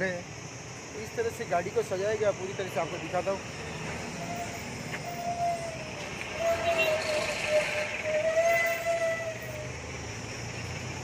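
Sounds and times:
engine humming: 0.6 - 11.0.

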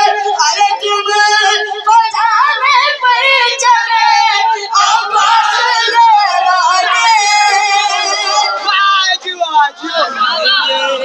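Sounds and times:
boy singing into microphone: 0.0 - 9.1.

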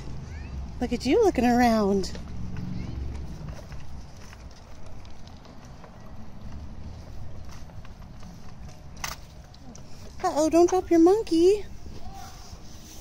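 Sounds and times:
footsteps: 0.0 - 13.0
stroller wheels rumbling on pavement: 0.0 - 13.0.

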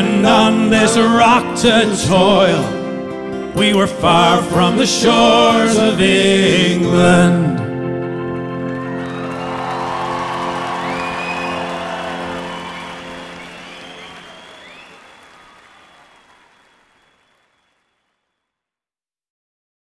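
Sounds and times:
audience applauding and whooping: 8.7 - 17.9.

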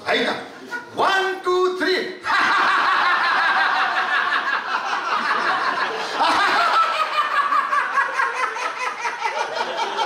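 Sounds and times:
group of people laughing: 2.2 - 10.0.

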